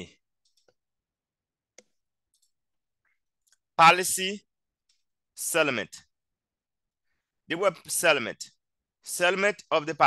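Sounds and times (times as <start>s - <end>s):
computer mouse clicks: 0.4s - 0.8s, 1.7s - 2.6s.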